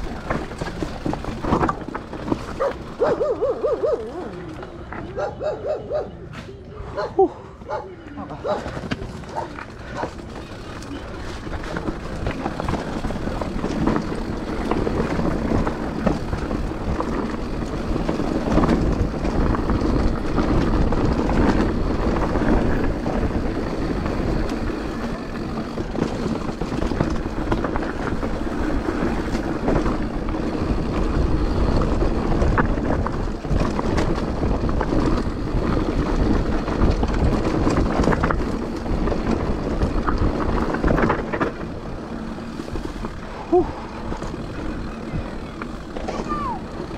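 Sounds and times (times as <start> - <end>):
bike knocks and rattles: 0.0 - 5.6, 7.6 - 46.9
tyres on dirt trail: 0.0 - 46.9.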